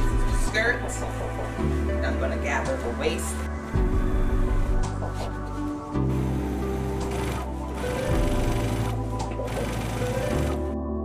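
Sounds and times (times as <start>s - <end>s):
background music: 0.0s - 11.0s
sewing machine running: 6.1s - 10.7s.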